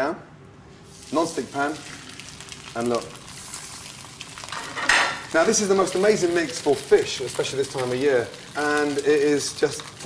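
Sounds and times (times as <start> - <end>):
fish sizzling in a pan: 0.9 - 10.0.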